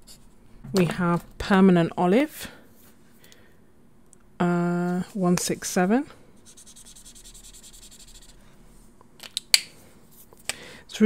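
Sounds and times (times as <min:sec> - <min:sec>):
marker scratching on paper: 0:06.4 - 0:08.4.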